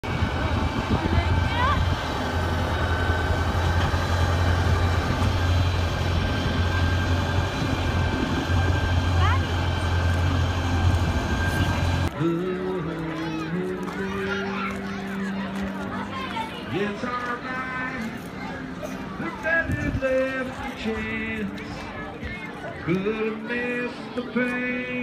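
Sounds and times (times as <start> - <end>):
wind noise on microphone: 0.0 - 2.3, 3.4 - 9.2, 19.5 - 20.3
tractor engine droning: 0.0 - 15.9.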